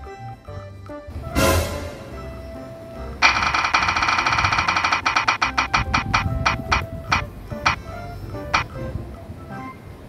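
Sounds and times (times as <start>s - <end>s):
background music: 0.0s - 10.0s
spinning wheel ticking: 3.2s - 8.8s.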